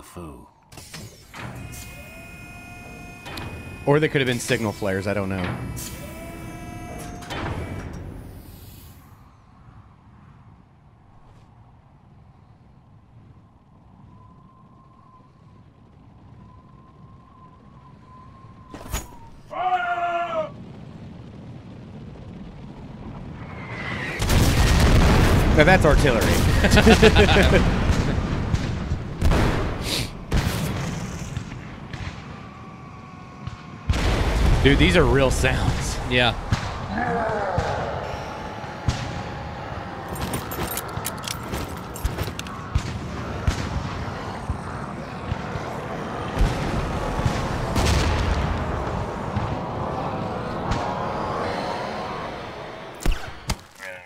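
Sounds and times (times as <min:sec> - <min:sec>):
sharp bangs: 0:00.7 - 0:09.0, 0:23.2 - 0:53.8
artillery booms with rumble: 0:20.6 - 0:39.8, 0:41.4 - 0:51.0.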